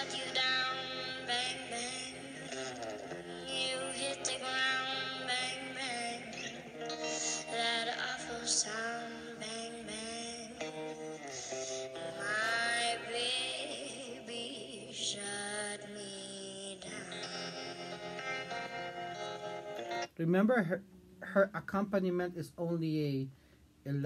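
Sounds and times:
girl singing a slow ballad: 0.0 - 18.7
electric guitar: 0.0 - 20.2.

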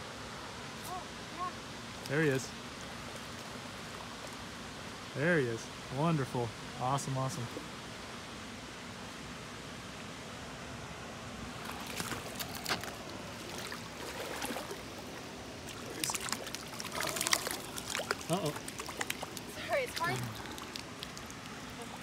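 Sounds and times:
creek water running: 0.0 - 22.0
fish splashing in water: 11.6 - 22.0.

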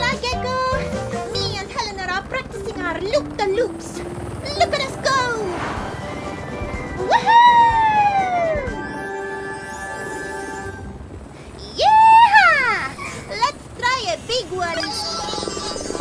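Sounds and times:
cartoon background music: 0.0 - 11.0, 14.6 - 16.0
swooping whistle-like glide: 5.4 - 11.0.

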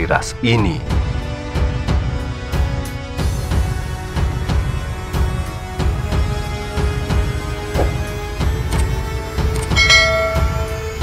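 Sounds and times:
background music with low pulse: 0.0 - 11.0
bell-like chime ringing: 9.8 - 11.0.

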